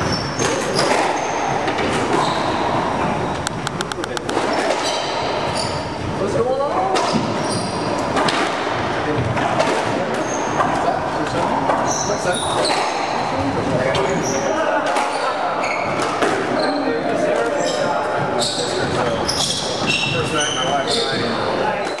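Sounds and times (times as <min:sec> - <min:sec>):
shoes squeaking on hardwood floor: 0:02.1 - 0:04.5
squash ball smacking: 0:03.5 - 0:04.8.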